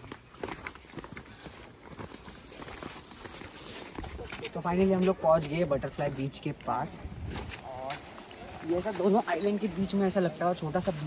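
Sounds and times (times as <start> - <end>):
footsteps on dry leaves: 0.0 - 6.3.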